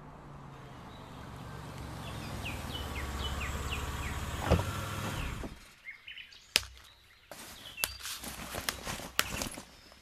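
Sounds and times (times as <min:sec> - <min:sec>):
car engine running: 0:00.0 - 0:05.6
birds chirping: 0:00.0 - 0:10.0.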